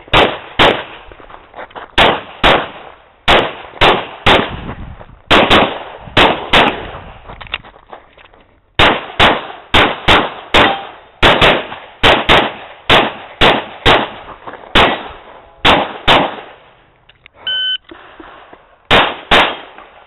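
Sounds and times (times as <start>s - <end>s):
rapid pistol shots: 0.1s - 1.0s, 2.0s - 4.6s, 5.3s - 6.9s, 8.8s - 16.7s, 18.9s - 20.0s
shot timer beep: 17.5s - 17.9s.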